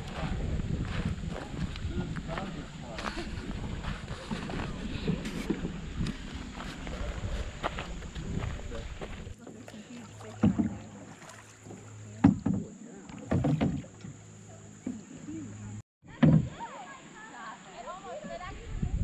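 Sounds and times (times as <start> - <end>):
water splashing: 1.2 - 15.4
paddle knocking canoe side: 9.0 - 15.1.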